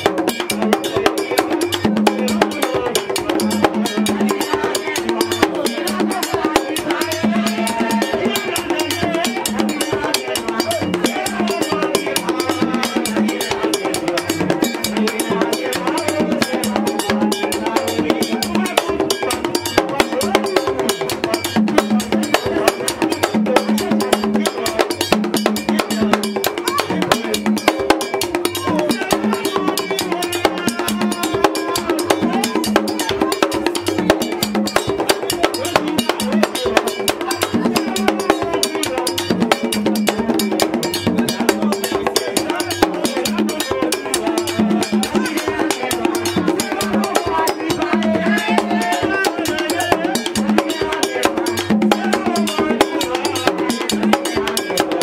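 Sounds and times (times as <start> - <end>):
fast hand-drumming: 0.0 - 55.0
person singing into a microphone: 0.0 - 55.0.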